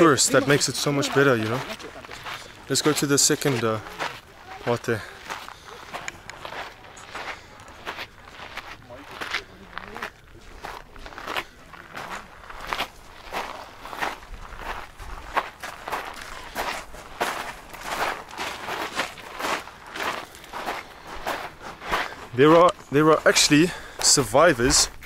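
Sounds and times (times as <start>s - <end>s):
footsteps on gravel: 0.0s - 25.0s.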